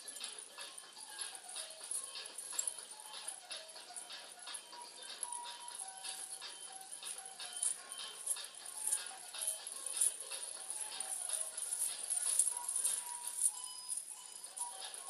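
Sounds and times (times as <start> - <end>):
faint background music: 0.0 - 15.0
metal coins jingling: 0.0 - 15.0.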